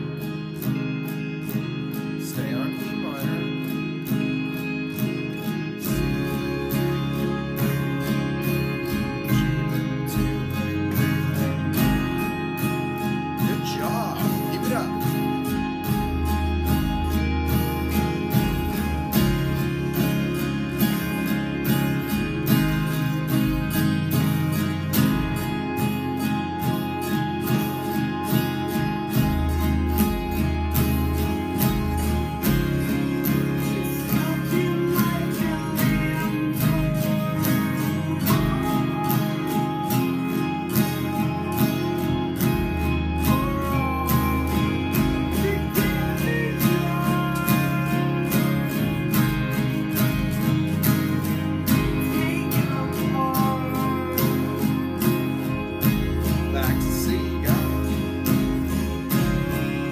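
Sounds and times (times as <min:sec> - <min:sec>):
acoustic guitar strumming chords: 0:00.0 - 0:59.9.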